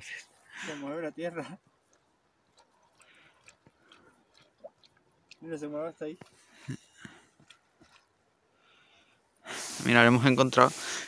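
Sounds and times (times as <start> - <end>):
wet squelches of bog ground: 0.0 - 10.9.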